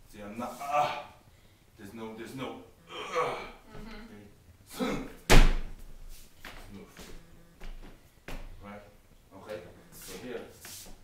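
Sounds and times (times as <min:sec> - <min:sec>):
heavy thump with boom: 0:05.3 - 0:05.8.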